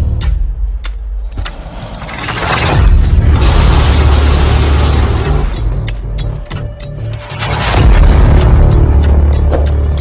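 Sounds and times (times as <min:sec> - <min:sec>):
deep rumble: 0:00.0 - 0:10.0.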